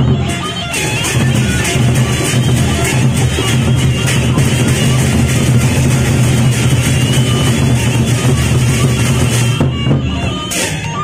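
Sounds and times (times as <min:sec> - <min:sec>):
barrel drums beaten rhythmically: 0:00.0 - 0:11.0
clashing cymbals: 0:00.3 - 0:11.0.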